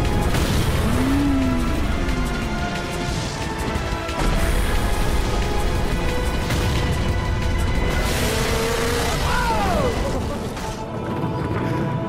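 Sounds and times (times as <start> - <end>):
dramatic music: 0.0 - 12.0
heavy rumble and crunch: 0.0 - 12.0.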